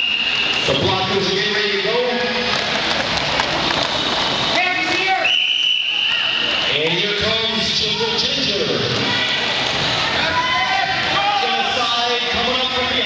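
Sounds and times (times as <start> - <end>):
referee whistle blast: 0.0 - 1.0, 5.0 - 6.8
crowd voices: 0.0 - 13.0.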